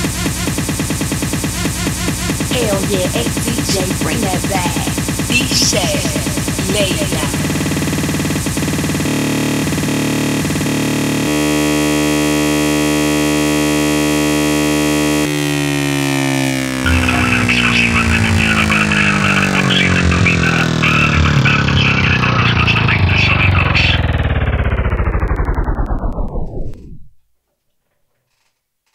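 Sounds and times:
synthesizer chord falling in pitch: 0.0 - 27.2
crackling noise: 0.0 - 28.9.

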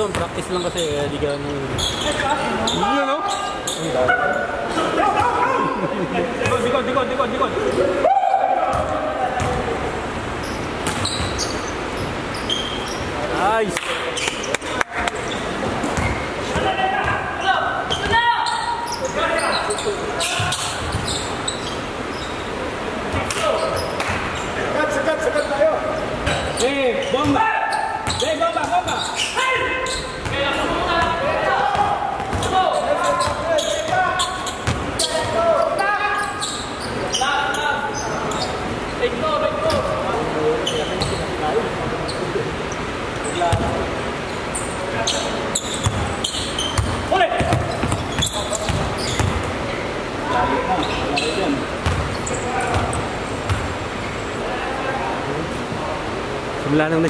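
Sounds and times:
players calling out: 0.0 - 13.6, 14.2 - 55.5
basketball bouncing indoors: 8.7 - 9.7, 10.4 - 12.2, 31.7 - 32.6, 34.6 - 35.0, 45.8 - 49.6, 51.8 - 53.8.

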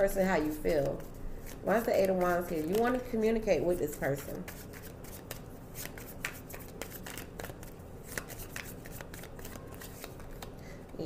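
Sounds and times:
cards being shuffled: 0.8 - 3.1, 4.4 - 10.6.

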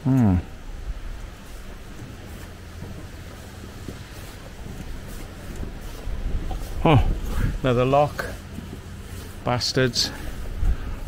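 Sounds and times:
footfalls on steel grating: 0.2 - 11.0
wind buffeting microphone: 0.4 - 11.0.

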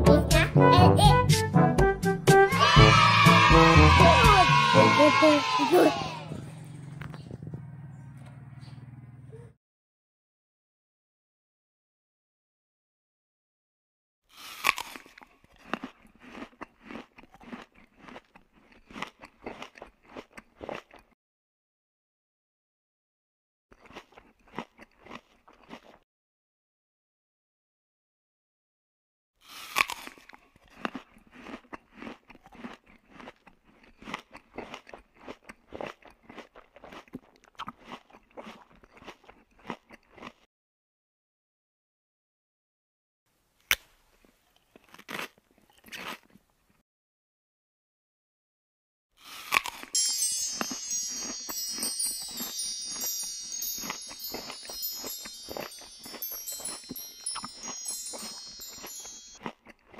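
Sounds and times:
crunching and chewing crispy snack: 14.3 - 21.2, 23.7 - 26.0, 29.4 - 40.5, 44.1 - 46.8, 49.2 - 59.9
high steady chiming tones: 50.0 - 59.4.

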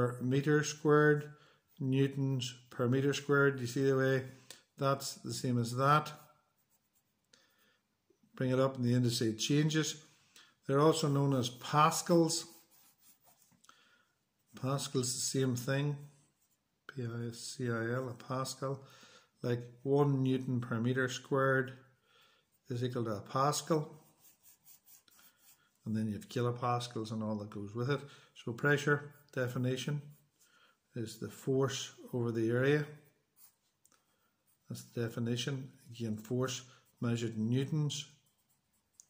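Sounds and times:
pencil scratching on paper: 5.6 - 7.3, 10.8 - 13.6, 16.0 - 16.7, 22.4 - 25.9, 32.8 - 35.2, 36.0 - 39.0.

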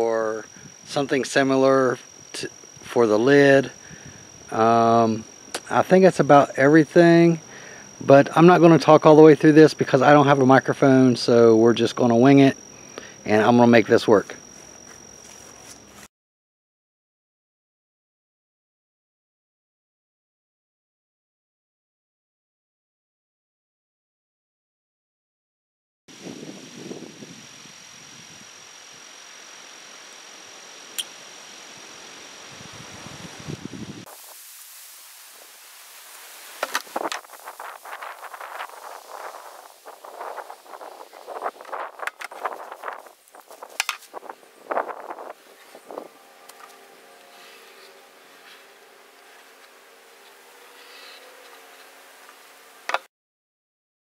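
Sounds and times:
faint steady hum: 0.0 - 16.1, 26.1 - 53.1
high insect buzz: 0.0 - 16.1, 26.1 - 53.1.

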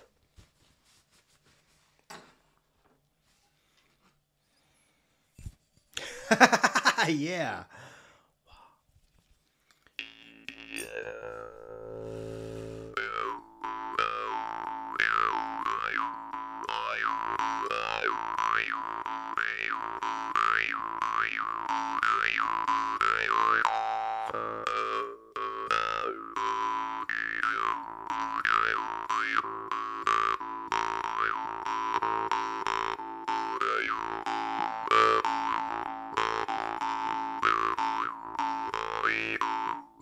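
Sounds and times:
jaw harp buzzing: 10.0 - 40.0.

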